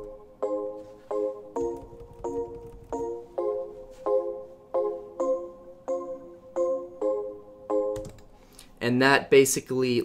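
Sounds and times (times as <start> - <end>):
bell-like piano chord loop: 0.0 - 8.6.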